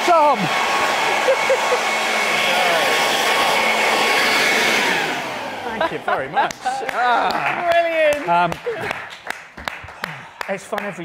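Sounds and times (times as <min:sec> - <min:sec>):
leaf blower running: 0:00.0 - 0:07.6.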